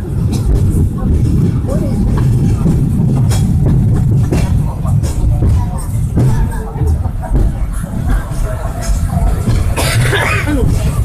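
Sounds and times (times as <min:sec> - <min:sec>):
tram car rumbling on track: 0:00.0 - 0:11.0.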